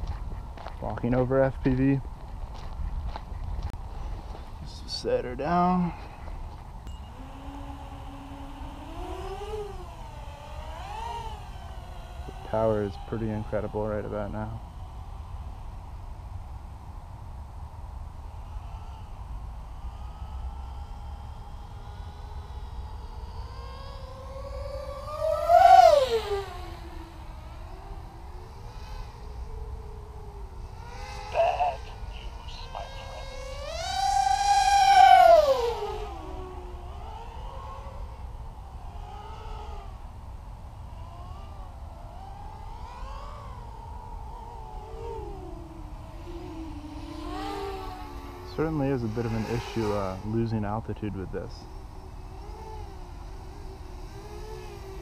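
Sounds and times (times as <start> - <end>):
drone motors whining: 0.0 - 55.0.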